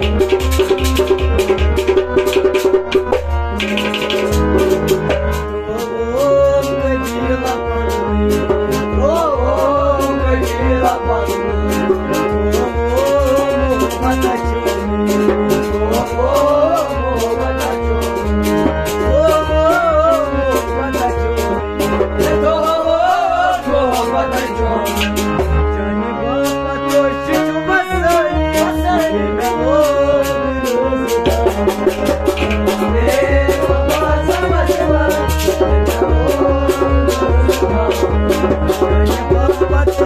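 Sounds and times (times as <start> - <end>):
harmonium chords: 0.0 - 40.0
steady percussion beat: 0.0 - 40.0
man singing: 5.5 - 40.0.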